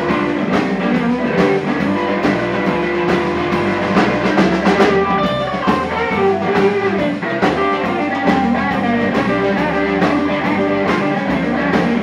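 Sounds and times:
electric guitars: 0.0 - 12.0
held lead guitar notes: 0.0 - 12.0
steady drum beat: 0.0 - 12.0.

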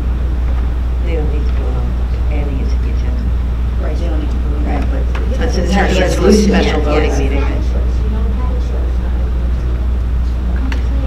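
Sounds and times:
low hum: 0.0 - 11.0
people talking quietly: 1.0 - 11.0.

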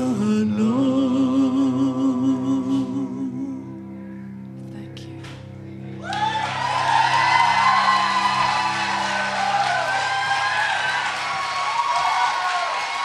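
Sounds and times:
audience whooping and cheering: 6.0 - 13.0.

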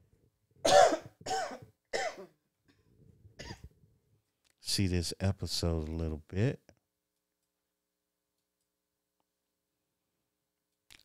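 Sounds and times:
woman coughing: 0.6 - 2.4, 3.4 - 3.7.

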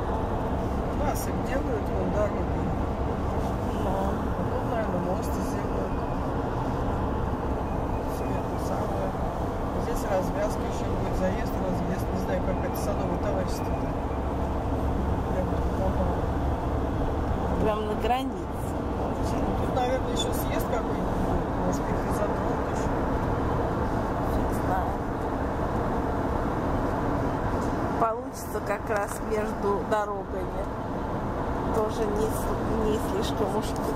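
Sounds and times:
road and engine rumble: 0.0 - 33.9.

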